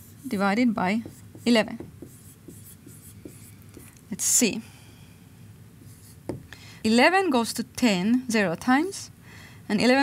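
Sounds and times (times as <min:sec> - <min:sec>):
marker writing on whiteboard: 0:00.0 - 0:04.0, 0:05.8 - 0:06.5.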